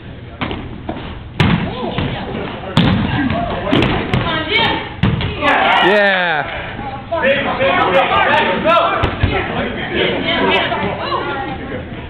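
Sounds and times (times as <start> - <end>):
balls bouncing on hard floor: 0.4 - 4.4, 5.0 - 5.4.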